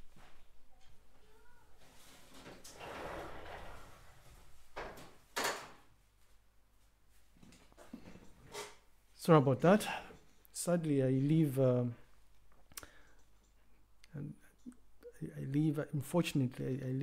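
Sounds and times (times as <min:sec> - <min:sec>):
door scraping slide: 0:02.0 - 0:04.5.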